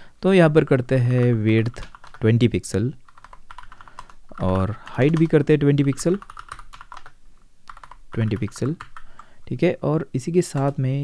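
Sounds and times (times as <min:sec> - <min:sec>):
typing on computer keyboard: 0:01.1 - 0:02.3, 0:03.1 - 0:09.3, 0:10.5 - 0:10.8.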